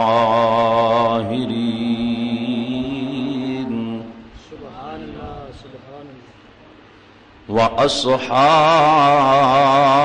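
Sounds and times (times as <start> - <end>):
man chanting into microphones: 0.0 - 5.8, 7.5 - 10.0.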